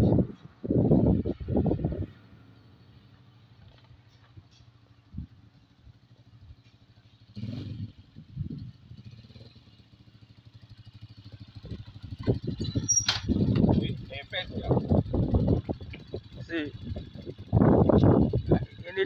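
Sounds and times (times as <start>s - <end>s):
small motorcycle engine: 5.1s - 19.0s.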